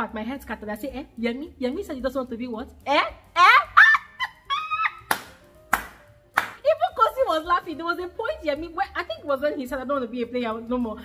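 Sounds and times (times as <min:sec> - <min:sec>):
woman speaking: 0:00.0 - 0:03.8
loud hand claps: 0:05.1 - 0:06.6.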